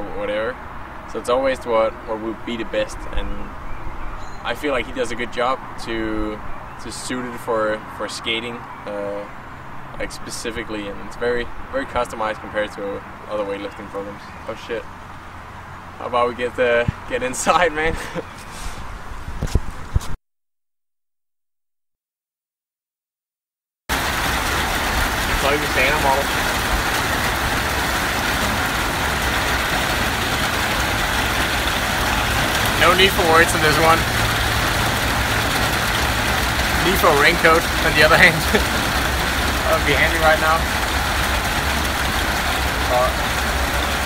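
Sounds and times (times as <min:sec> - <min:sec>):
heavy rain pouring: 0:23.9 - 0:44.0
person speaking: 0:31.9 - 0:34.2, 0:36.7 - 0:40.8.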